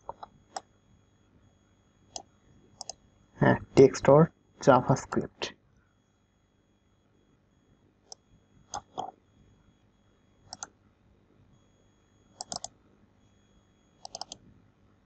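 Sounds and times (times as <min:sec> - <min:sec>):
mouse and keyboard clicks: 0:00.0 - 0:00.6, 0:08.7 - 0:09.1, 0:12.4 - 0:12.7, 0:14.0 - 0:14.4.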